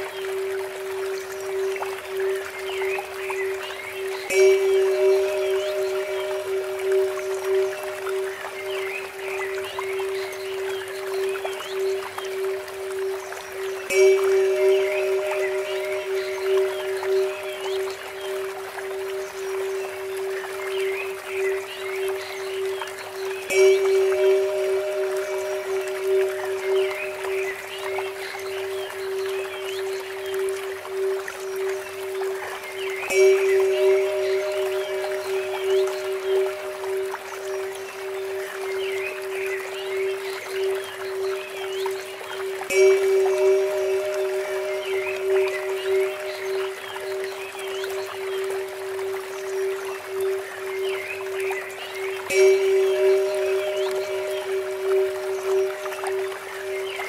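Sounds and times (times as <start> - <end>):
water trickling: 0.0 - 57.0
temple bell ringing: 4.3 - 9.4, 13.6 - 20.8, 23.5 - 28.8, 33.1 - 40.4, 42.6 - 48.4, 52.0 - 57.0.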